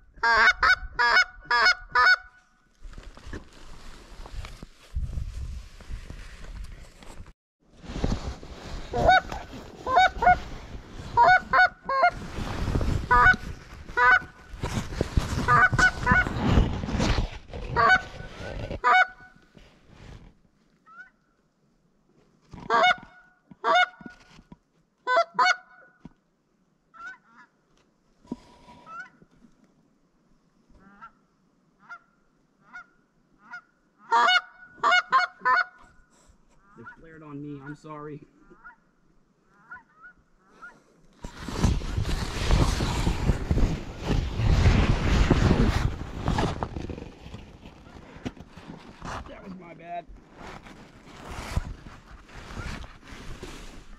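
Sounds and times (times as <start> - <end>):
geese honking and clucking: 0.2 - 2.3, 8.9 - 10.4, 11.1 - 12.2, 13.1 - 14.4, 15.5 - 16.2, 17.8 - 18.2, 18.8 - 19.3, 22.6 - 24.1, 25.1 - 25.9, 31.8 - 35.9, 39.5 - 40.8.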